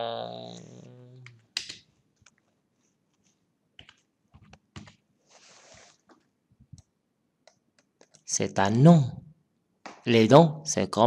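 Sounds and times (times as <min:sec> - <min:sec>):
faint keyboard typing: 0:01.2 - 0:05.1, 0:06.0 - 0:08.3.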